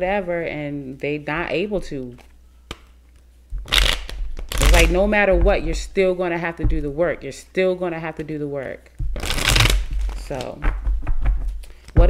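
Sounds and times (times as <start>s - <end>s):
cards being shuffled: 2.1s - 5.0s, 9.0s - 12.0s.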